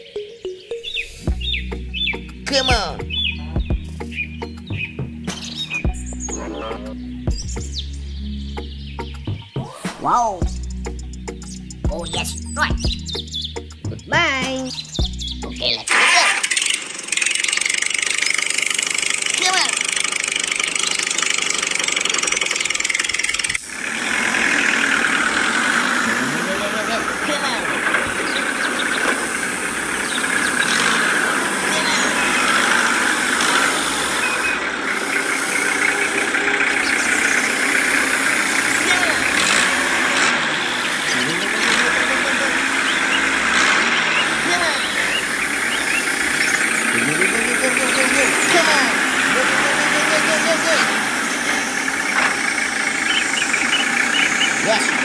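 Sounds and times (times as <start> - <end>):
wordless vocal calls: 0.0 - 23.0, 23.6 - 55.0
model tractor motor running: 15.8 - 55.0.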